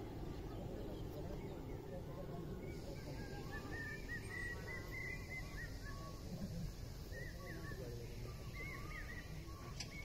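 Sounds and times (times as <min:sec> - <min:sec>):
flock of birds chirping: 0:00.0 - 0:10.0.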